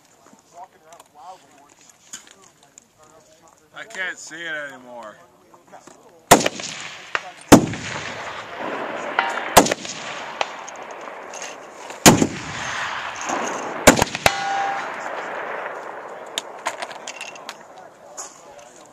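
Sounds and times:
rifle shots with long echo: 6.3s - 18.1s
faint metallic pings: 14.2s - 14.9s.

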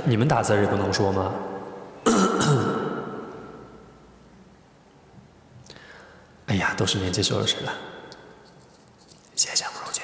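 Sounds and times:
man clearing his throat: 2.0s - 3.2s.

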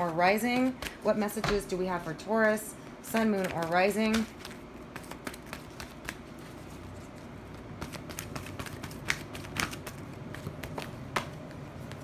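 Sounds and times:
cards being shuffled: 3.1s - 12.0s.

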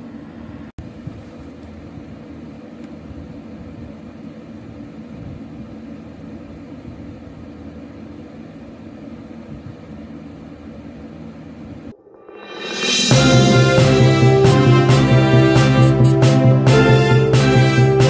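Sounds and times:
machine-like room tone hum: 0.0s - 18.0s.

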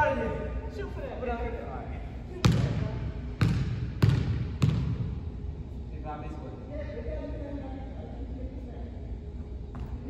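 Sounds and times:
basketball bouncing on gym floor: 2.4s - 5.2s.

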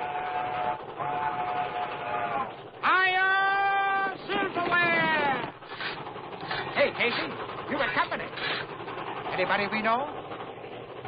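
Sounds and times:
steam locomotive whistle: 0.0s - 5.2s
train running noise: 0.0s - 11.0s.

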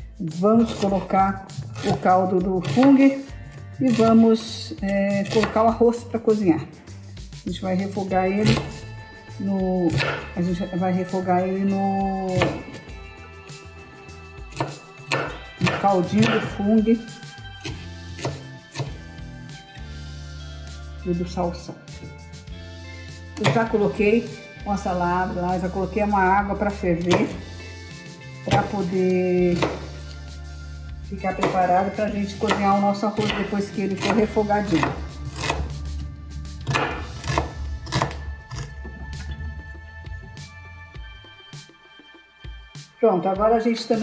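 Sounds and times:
background music: 0.0s - 44.0s
knife chopping on cutting board: 1.7s - 3.2s, 3.9s - 4.2s, 5.1s - 5.7s, 8.4s - 8.8s, 9.9s - 10.4s, 12.3s - 12.8s, 14.5s - 16.7s, 17.6s - 19.0s, 23.4s - 23.8s, 27.0s - 27.4s, 28.5s - 28.9s, 29.5s - 30.1s, 31.3s - 35.8s, 36.6s - 38.7s.

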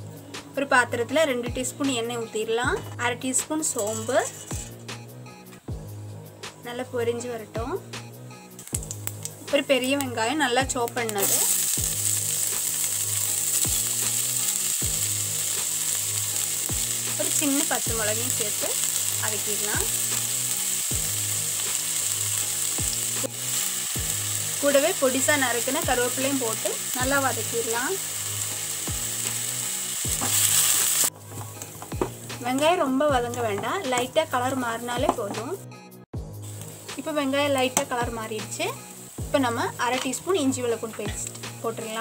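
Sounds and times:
hot oil sizzling with seeds: 3.6s - 4.8s, 8.5s - 35.2s, 36.3s - 42.0s.

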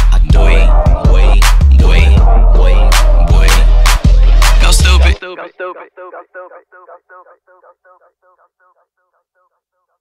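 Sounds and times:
rapped vocal repeating a word: 0.0s - 10.0s.

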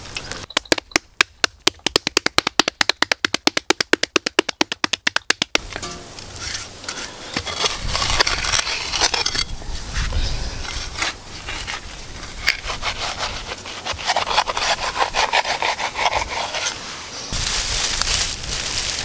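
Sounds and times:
dry twigs and leaves rustling: 5.5s - 19.0s
hands smoothing wet clay: 6.4s - 17.1s
wind on microphone: 7.5s - 16.6s, 17.3s - 19.0s.

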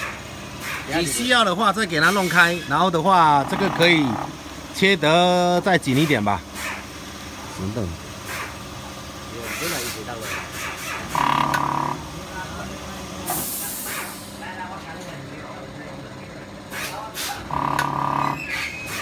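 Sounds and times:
short steady buzzing tones: 3.3s - 4.5s, 11.1s - 12.1s, 17.4s - 18.6s
brief hiss: 13.3s - 14.4s.

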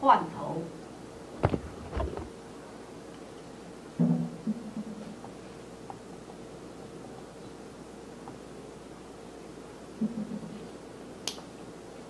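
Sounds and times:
room hiss: 0.0s - 12.0s
sharp click: 11.2s - 11.5s.

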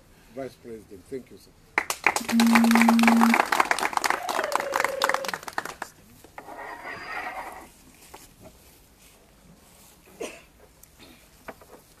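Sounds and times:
small crowd clapping: 1.8s - 6.0s
soft rustle: 6.1s - 12.0s.

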